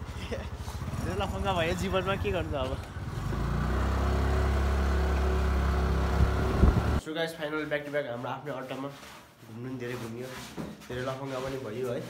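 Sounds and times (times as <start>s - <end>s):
motorcycle engine running: 0.1s - 7.0s.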